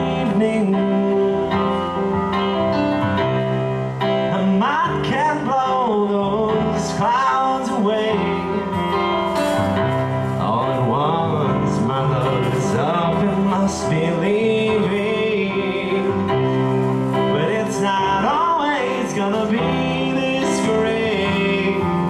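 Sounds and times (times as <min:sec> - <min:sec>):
man singing into microphone: 0:00.0 - 0:02.0, 0:04.2 - 0:22.0
electronic keyboard chords: 0:00.0 - 0:22.0.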